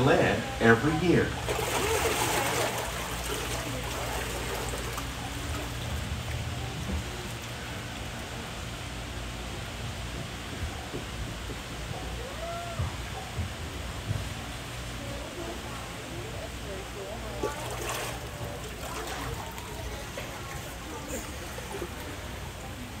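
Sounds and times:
low steady hum: 0.0s - 23.0s
rush of water: 0.0s - 23.0s.

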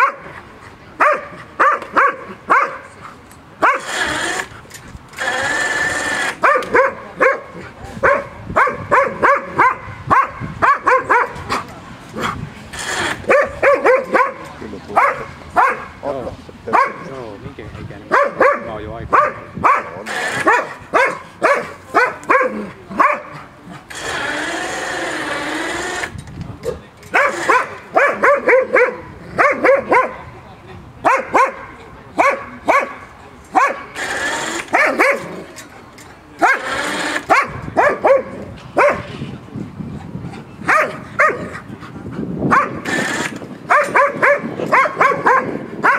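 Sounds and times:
dog barking: 0.0s - 0.3s, 1.0s - 2.9s, 3.6s - 4.0s, 6.4s - 11.5s, 13.3s - 16.0s, 16.7s - 17.1s, 18.1s - 23.4s, 27.1s - 30.2s, 31.0s - 33.9s, 34.7s - 35.4s, 37.3s - 39.1s, 40.7s - 41.5s, 42.5s - 42.8s, 43.7s - 45.9s.

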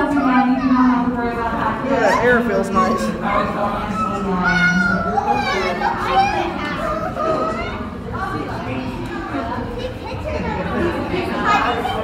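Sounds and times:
children's voices: 0.0s - 12.0s
crowd chatter: 0.0s - 12.0s.

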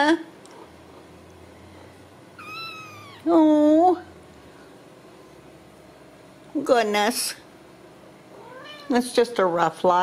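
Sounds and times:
kittens meowing: 2.4s - 3.3s.

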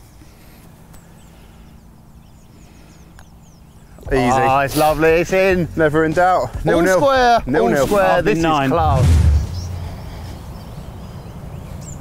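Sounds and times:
small birds chirping: 0.0s - 7.2s, 9.3s - 12.0s
low hum and rumble: 8.6s - 12.0s.

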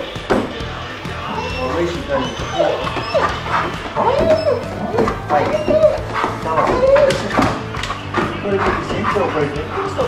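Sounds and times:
background music: 0.0s - 10.0s
dog whining: 1.1s - 10.0s.

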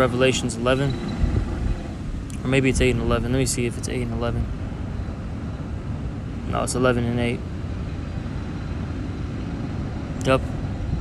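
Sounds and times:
man speaking: 0.0s - 1.0s, 2.3s - 4.5s, 6.5s - 7.4s, 10.2s - 10.5s
low background rumble: 0.0s - 11.0s.

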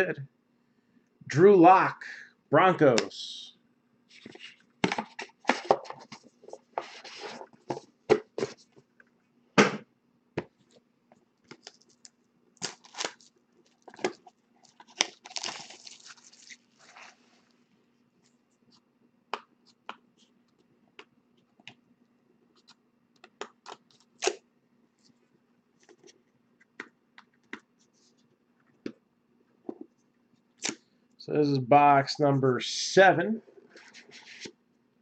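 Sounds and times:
plastic wrapping tearing and crinkling: 12.6s - 17.3s.

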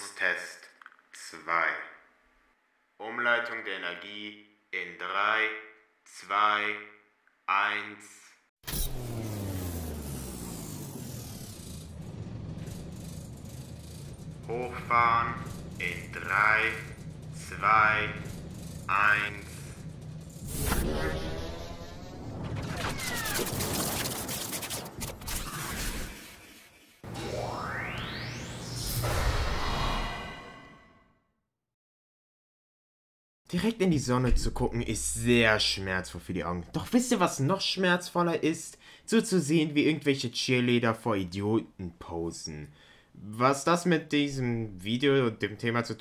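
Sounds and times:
steady mechanical rattling: 8.7s - 22.7s
low machine hum with falling whine: 9.2s - 21.7s
loud hit: 28.6s - 30.9s.

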